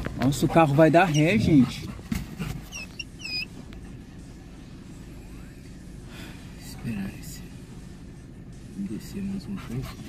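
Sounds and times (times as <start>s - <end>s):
car rumbling on dirt road: 0.0s - 10.0s
dog whining: 0.5s - 3.6s.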